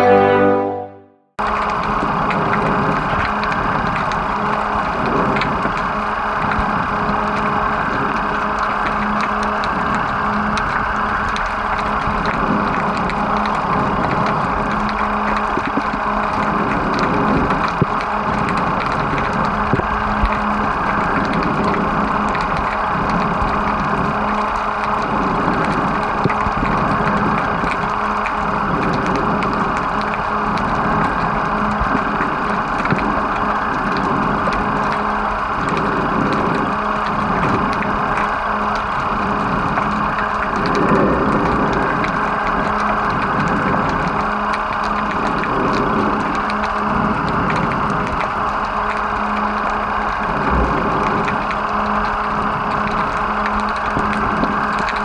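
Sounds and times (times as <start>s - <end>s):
muffled underwater noise: 1.5s - 55.0s
small clicks: 1.5s - 55.0s.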